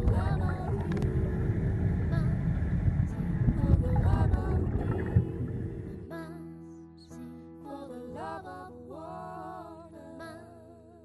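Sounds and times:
low rumble: 0.0s - 6.2s.

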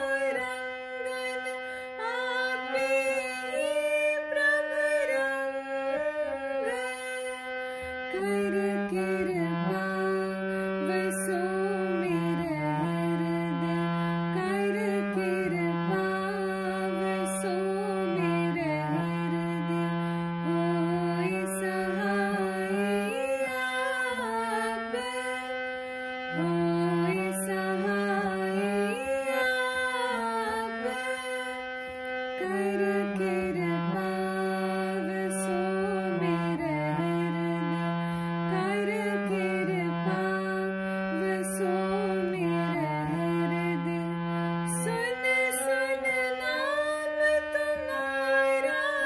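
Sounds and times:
harmonium playing slow melody: 0.0s - 49.0s.

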